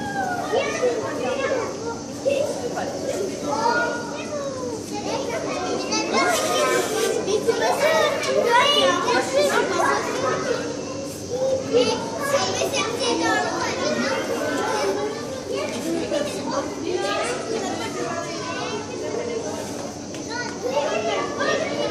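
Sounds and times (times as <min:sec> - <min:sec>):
children talking and calling out: 0:00.0 - 0:21.9.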